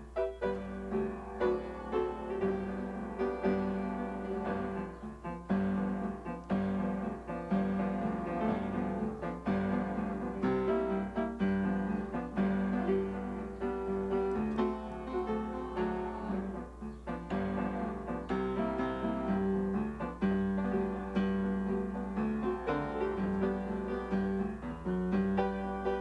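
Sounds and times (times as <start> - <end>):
upright piano chords: 0.0 - 26.0.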